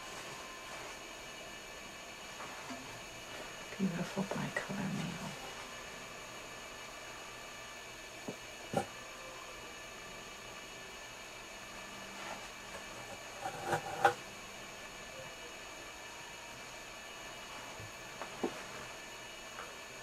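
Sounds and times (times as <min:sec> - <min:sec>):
low hiss of recording noise: 0:00.0 - 0:20.0.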